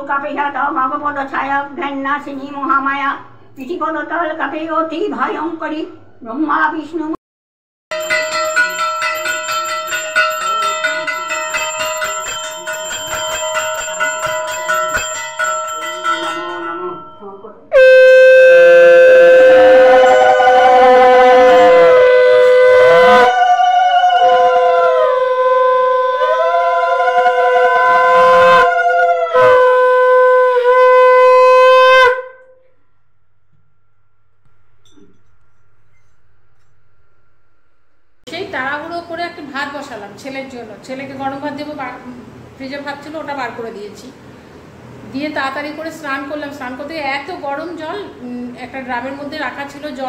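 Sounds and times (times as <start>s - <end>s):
hand bell ringing rapidly: 7.9s - 17.5s
conch shell blasts: 7.9s - 23.4s, 27.8s - 38.2s.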